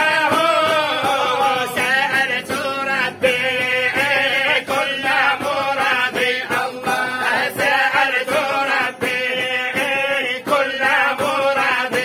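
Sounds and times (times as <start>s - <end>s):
men chanting devotional song: 0.0s - 12.0s.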